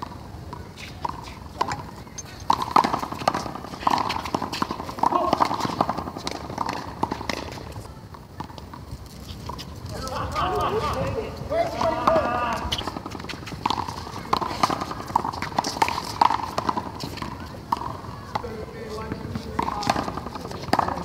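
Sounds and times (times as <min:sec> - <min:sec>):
footsteps on court: 0:00.0 - 0:21.0
voices: 0:00.0 - 0:21.0.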